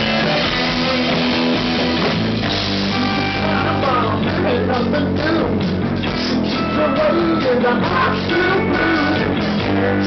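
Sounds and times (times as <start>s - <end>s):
bass guitar: 0.0s - 10.0s
drum kit: 0.0s - 10.0s
electric guitar: 0.0s - 10.0s.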